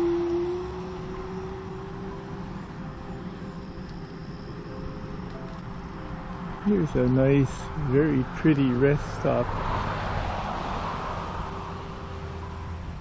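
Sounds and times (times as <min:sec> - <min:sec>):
electric bike motor whining: 0:00.0 - 0:04.3.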